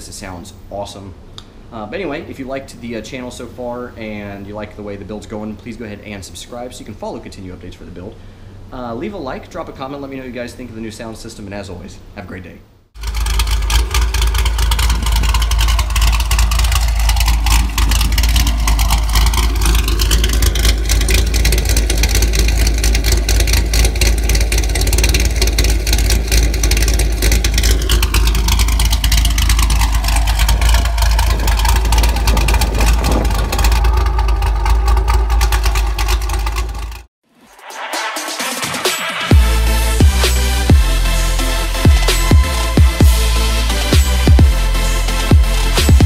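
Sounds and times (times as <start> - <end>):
car engine idling and revving: 13.0 - 37.1, 38.6 - 46.0.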